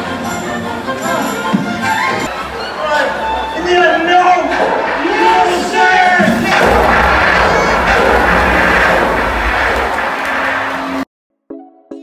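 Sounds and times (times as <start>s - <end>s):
loud deep rumbling: 4.7s - 11.0s.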